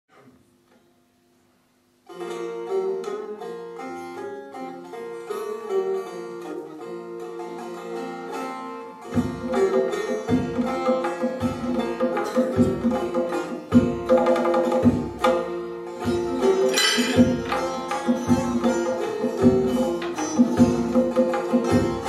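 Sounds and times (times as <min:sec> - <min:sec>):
plucked string instrument melody: 0:02.0 - 0:22.0
hand drum deep strokes: 0:16.0 - 0:22.0.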